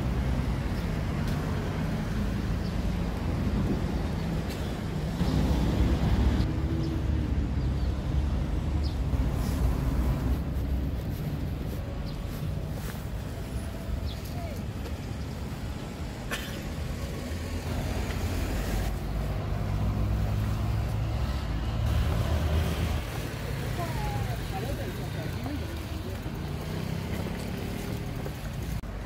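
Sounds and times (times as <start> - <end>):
rumble of street traffic: 0.0 - 29.0
vehicle passing close by: 17.2 - 28.6.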